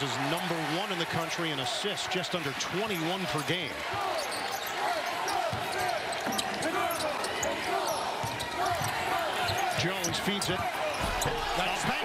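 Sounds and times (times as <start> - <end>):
arena crowd noise: 0.0 - 12.0
sneakers squeaking on hardwood: 3.9 - 11.4.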